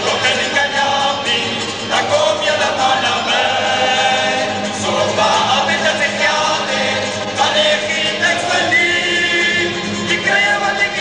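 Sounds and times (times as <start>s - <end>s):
lead singer at microphone: 0.0s - 11.0s
male choir singing: 0.0s - 11.0s
string band of guitars and mandolins: 0.0s - 11.0s.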